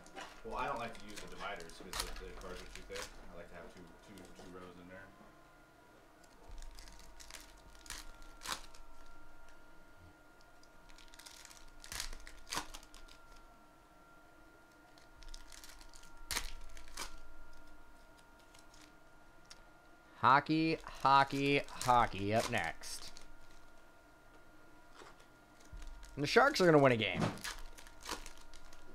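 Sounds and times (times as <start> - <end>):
faint steady high hum: 0.0 - 28.9
foil packs tearing and crinkling: 0.6 - 4.4, 6.5 - 9.1, 10.8 - 13.4, 14.9 - 17.7, 18.4 - 18.9, 20.7 - 23.7, 25.0 - 28.9.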